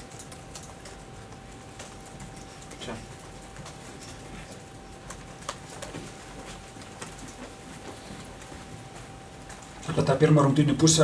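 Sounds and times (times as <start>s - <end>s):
faint clicks and taps: 0.0s - 9.9s
electrical hum: 0.0s - 11.0s.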